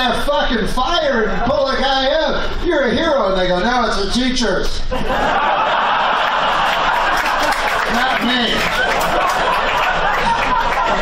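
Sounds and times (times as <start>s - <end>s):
audience laughing: 4.9s - 11.0s
audience clapping: 6.0s - 11.0s.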